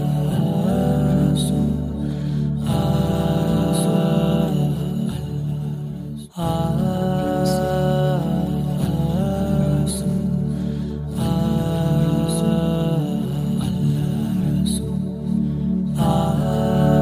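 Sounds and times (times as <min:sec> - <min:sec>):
low hummed drone: 0:00.0 - 0:17.0
voice singing long ah notes: 0:00.0 - 0:17.0.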